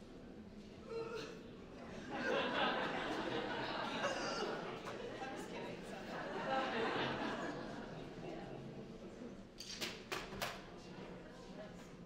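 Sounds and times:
faint room murmur: 0.0s - 12.0s.

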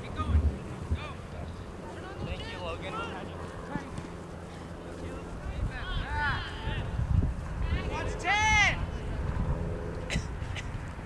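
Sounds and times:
wind rumbling on microphone: 0.0s - 2.8s, 3.6s - 11.0s.

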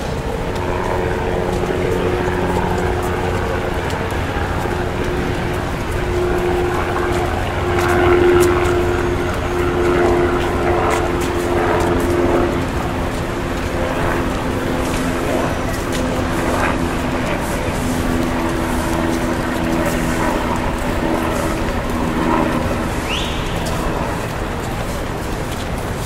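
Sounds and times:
city traffic noise: 0.0s - 26.0s.

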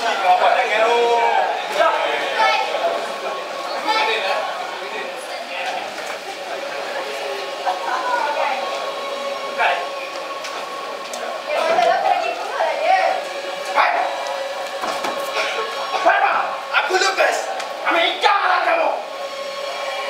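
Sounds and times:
voices calling out in a hall: 0.0s - 20.0s.

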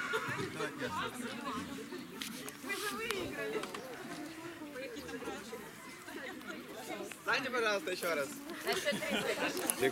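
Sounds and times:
indistinct chatter of voices: 0.0s - 9.9s.

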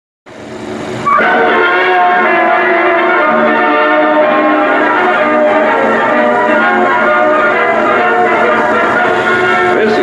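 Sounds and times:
noisy swell: 0.3s - 10.0s
orchestral sustained chord: 0.4s - 10.0s.

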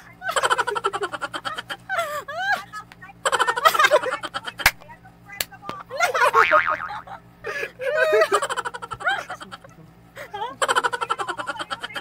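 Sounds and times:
cartoon boing sound effect: 6.3s - 7.1s.

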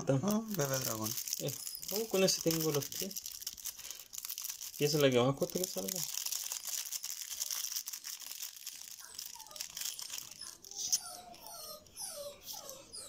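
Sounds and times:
cards and foil wrappers crinkling: 0.0s - 11.1s.

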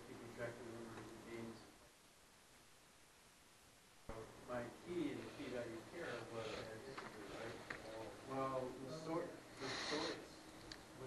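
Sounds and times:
light hiss: 3.8s - 11.0s.

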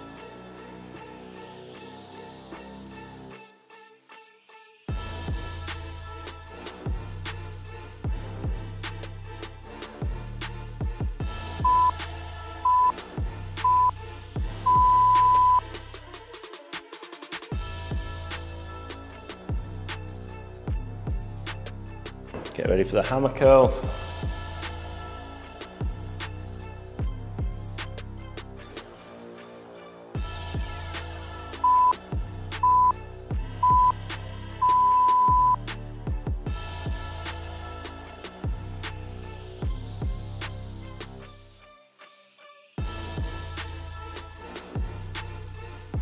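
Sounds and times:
electronic music with bass beat: 10.0s - 16.0s, 30.5s - 40.8s
electronic timer beeps: 11.6s - 12.0s, 12.7s - 12.9s, 13.7s - 13.9s, 14.7s - 15.6s, 31.6s - 32.0s, 32.6s - 33.0s, 33.6s - 34.0s, 34.6s - 35.6s.

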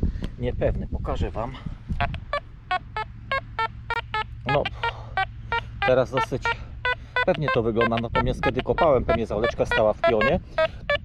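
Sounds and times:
metal detector short beeps: 2.0s - 11.0s.

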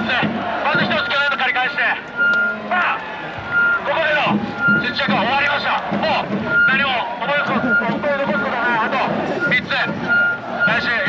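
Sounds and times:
man speaking to crowd: 0.0s - 11.0s
high beep tone: 2.2s - 2.8s, 3.5s - 3.9s, 4.5s - 5.1s, 6.5s - 11.0s.

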